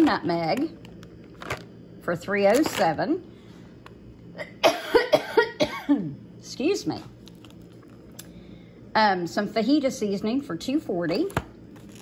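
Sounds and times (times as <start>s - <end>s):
woman coughing: 4.4s - 6.2s.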